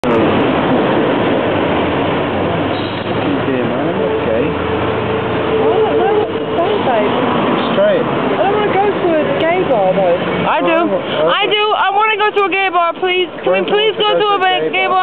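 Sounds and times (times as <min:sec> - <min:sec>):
street noise: 0:00.0 - 0:15.0.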